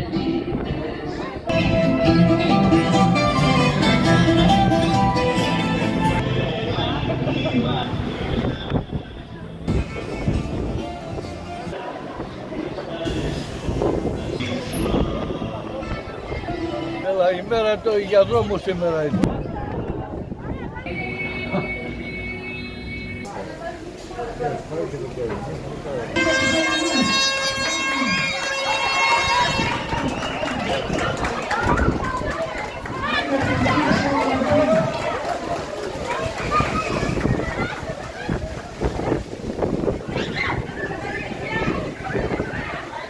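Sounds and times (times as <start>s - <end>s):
spectators' voices and calls: 0.0s - 43.0s
people talking: 11.6s - 39.3s, 40.0s - 43.0s.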